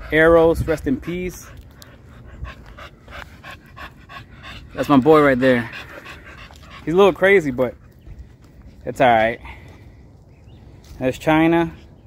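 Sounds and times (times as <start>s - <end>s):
dog panting quickly: 0.0s - 8.8s.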